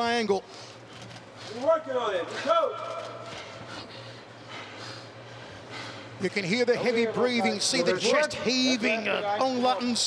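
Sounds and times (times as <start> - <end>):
heavy breathing: 3.3 - 6.2.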